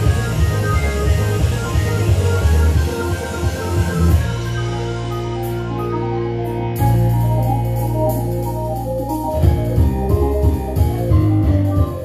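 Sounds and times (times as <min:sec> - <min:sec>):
electronic organ chords: 0:00.0 - 0:12.0
pulsing low bass: 0:00.0 - 0:12.0.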